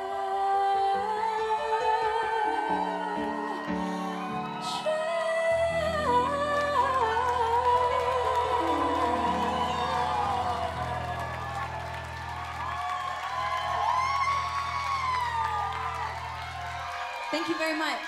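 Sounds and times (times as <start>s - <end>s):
audience whooping and cheering: 1.5s - 18.0s.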